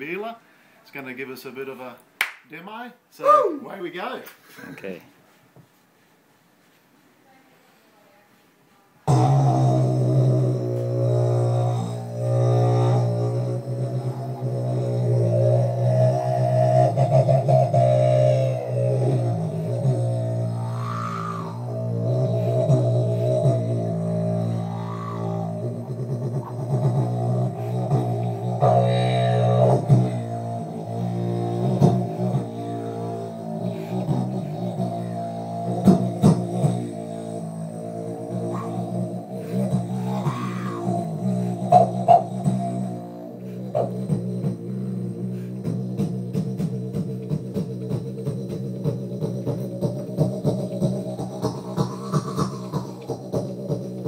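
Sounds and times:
beatbox clicks and hits: 9.1 - 54.0
vocal didgeridoo drone: 9.1 - 54.0.

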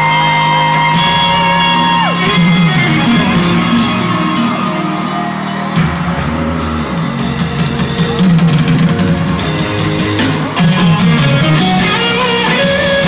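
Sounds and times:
live band music with electric guitar: 0.0 - 13.0.

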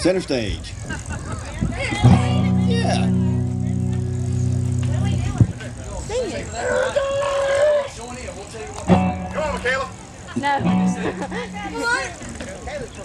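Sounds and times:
voices: 0.0 - 13.0
electric guitar and bass chord: 2.0 - 6.0, 8.9 - 12.0.

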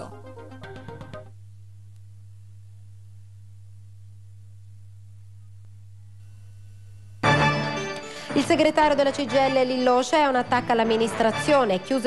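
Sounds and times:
low electrical hum: 0.0 - 7.3
faint pulsing buzz: 0.1 - 7.3.

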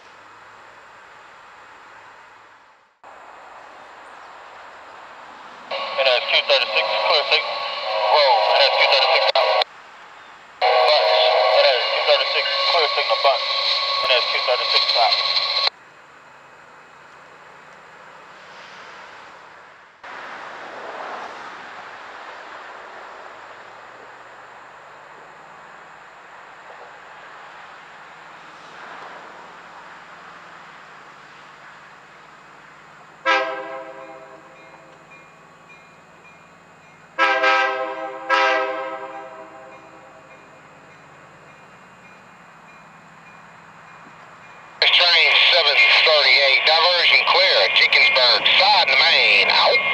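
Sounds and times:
diesel locomotive engine running: 0.0 - 20.6, 21.6 - 49.9
locomotive horn blasts: 33.2 - 34.9, 37.2 - 40.1.

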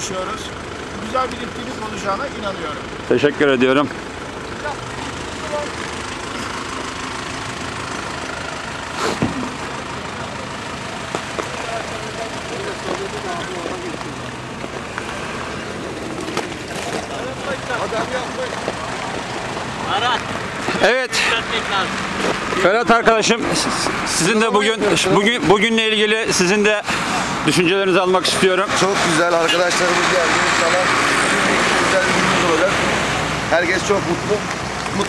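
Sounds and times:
engines idling: 0.0 - 35.0.

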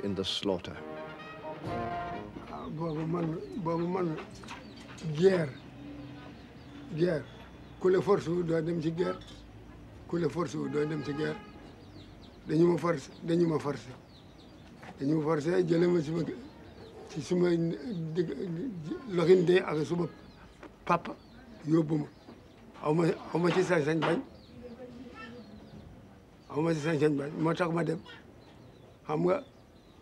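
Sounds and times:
elderly man speaking: 0.0 - 1.0, 2.2 - 6.0, 6.8 - 11.6, 12.4 - 14.1, 14.8 - 22.2, 22.8 - 24.4, 26.4 - 28.3, 29.0 - 29.6.

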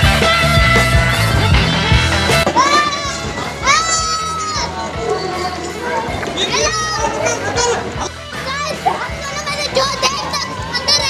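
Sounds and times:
rock music: 0.0 - 11.0
children shouting: 1.2 - 11.0.

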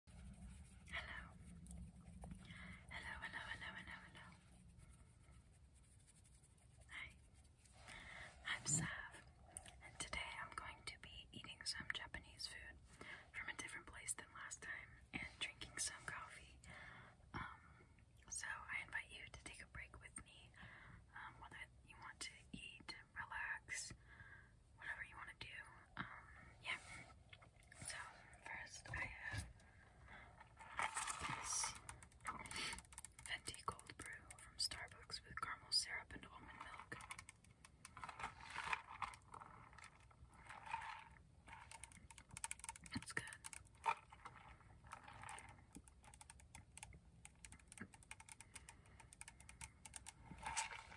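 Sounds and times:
woman whispering: 0.8 - 1.7, 2.4 - 4.4, 6.8 - 7.2, 8.4 - 16.7, 17.3 - 24.0, 24.8 - 27.0, 27.7 - 29.6, 30.7 - 37.3, 42.4 - 43.6.

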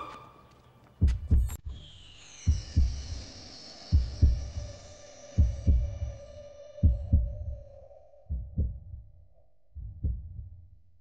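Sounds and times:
heartbeat thumps: 1.0 - 1.6, 2.5 - 3.1, 3.9 - 4.7, 5.4 - 6.2, 6.8 - 7.7, 8.3 - 9.2, 9.8 - 10.8.

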